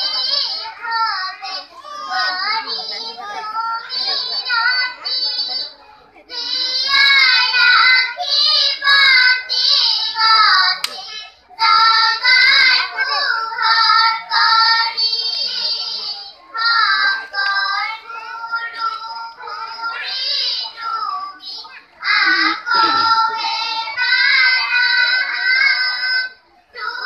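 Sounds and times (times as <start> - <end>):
children singing together: 0.0 - 27.0.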